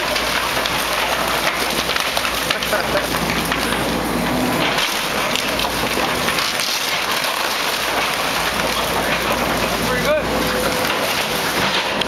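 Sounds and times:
wooden house splintering and clattering: 0.0s - 12.0s.

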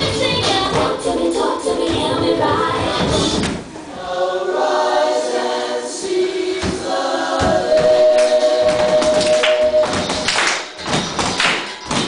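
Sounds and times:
vocal group singing in harmony: 0.0s - 10.2s.

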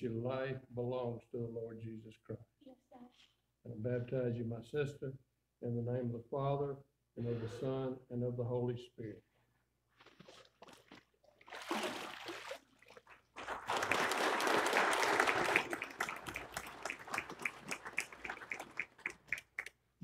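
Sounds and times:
water splashing: 10.1s - 14.1s
congregation applauding: 13.4s - 19.7s.

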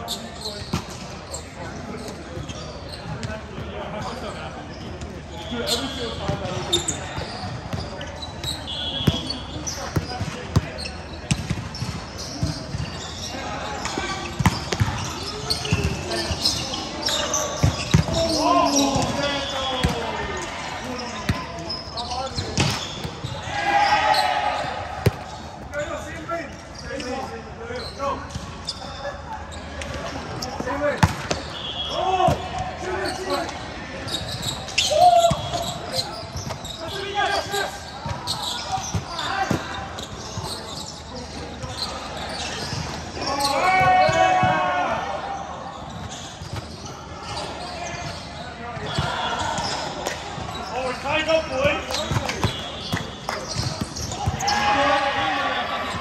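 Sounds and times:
players shouting: 13.3s - 26.2s, 30.6s - 39.8s, 43.2s - 45.8s, 48.8s - 56.0s.

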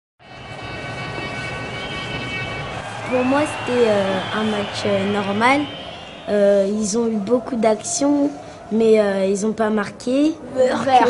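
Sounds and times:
indistinct background din: 0.2s - 11.0s.

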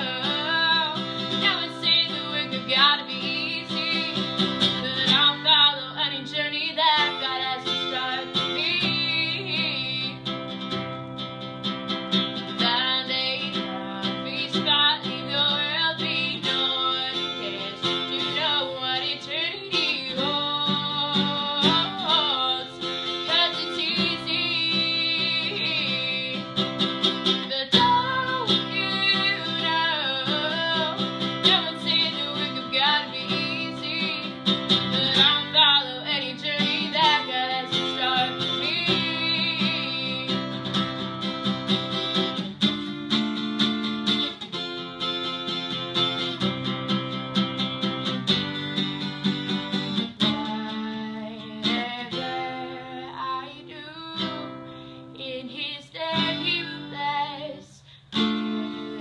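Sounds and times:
woman singing: 0.0s - 42.4s, 46.2s - 59.0s
strummed acoustic guitar: 0.0s - 59.0s.

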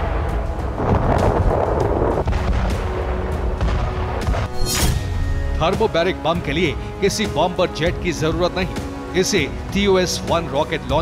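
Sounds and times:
heavy explosion blast: 0.0s - 5.7s
deep explosion rumble: 0.0s - 5.8s.

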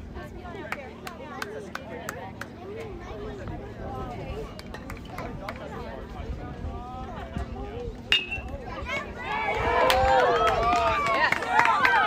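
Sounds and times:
metal bat pinging on ball: 8.1s - 8.5s
people shouting and yelling: 8.1s - 12.0s.

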